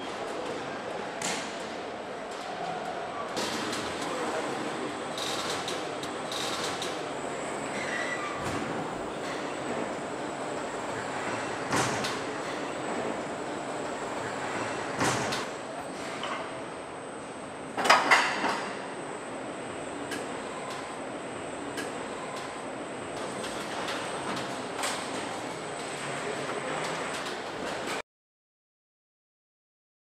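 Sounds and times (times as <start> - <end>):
assembly line machinery noise: 3.3 - 16.5, 17.8 - 28.0.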